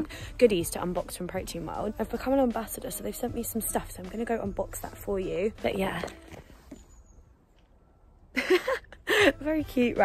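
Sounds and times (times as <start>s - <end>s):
woman laughing: 8.3s - 9.6s.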